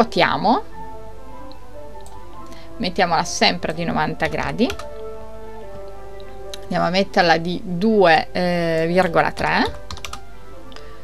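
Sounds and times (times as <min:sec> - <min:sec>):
faint background music: 0:00.0 - 0:11.0
keyboard keystrokes: 0:04.2 - 0:04.9, 0:09.7 - 0:10.2.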